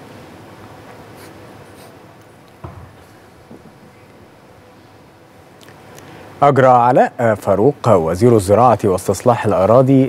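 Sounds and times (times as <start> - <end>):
low hiss: 0.0 - 10.0.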